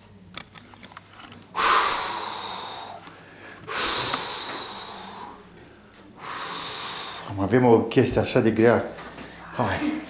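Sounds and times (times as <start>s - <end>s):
loud breathy exhales: 3.7s - 5.5s.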